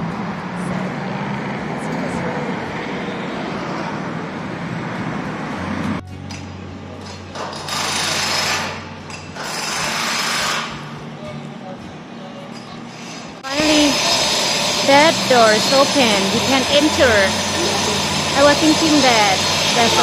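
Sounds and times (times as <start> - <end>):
steady rushing outdoor noise: 0.0 - 6.0, 12.9 - 20.0
power tool bursts: 7.5 - 10.8, 13.0 - 20.0.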